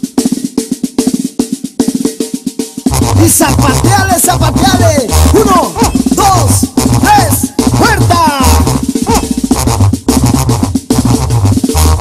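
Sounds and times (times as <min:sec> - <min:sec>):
fast drum passage: 0:00.0 - 0:12.0
music with heavy bass line: 0:02.7 - 0:12.0.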